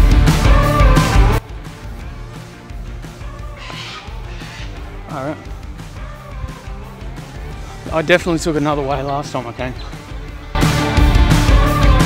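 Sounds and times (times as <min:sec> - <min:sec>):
rock music with bass line: 0:00.0 - 0:12.0.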